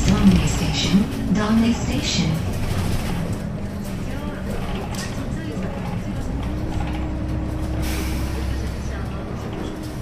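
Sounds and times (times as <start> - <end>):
bus cabin hum with held tone: 0.0 - 10.0.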